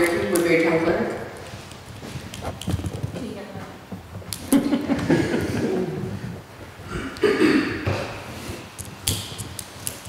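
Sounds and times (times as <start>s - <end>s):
low voices: 5.0s - 8.5s.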